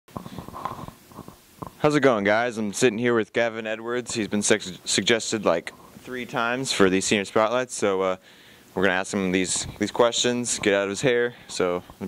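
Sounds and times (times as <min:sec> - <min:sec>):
microphone handling clicks: 0:00.1 - 0:01.8
man speaking: 0:01.8 - 0:12.0.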